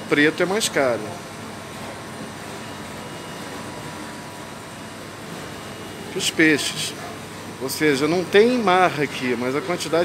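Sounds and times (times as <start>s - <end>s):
refrigerator hiss and hum: 0.0s - 10.0s.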